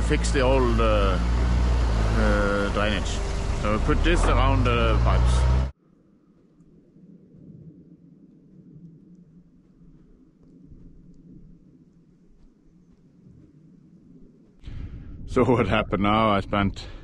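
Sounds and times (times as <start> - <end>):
faint low rumble: 2.2 - 17.0
faint ticks: 8.2 - 13.6.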